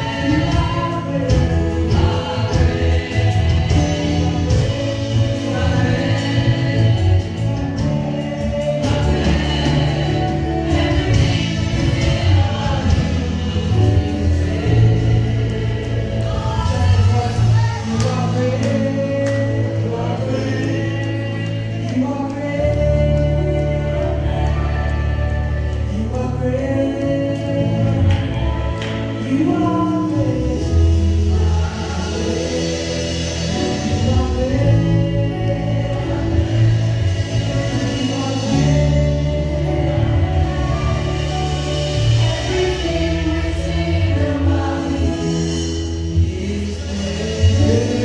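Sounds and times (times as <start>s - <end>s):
group singing gospel music: 0.0s - 48.0s
keyboard accompaniment: 0.0s - 48.0s.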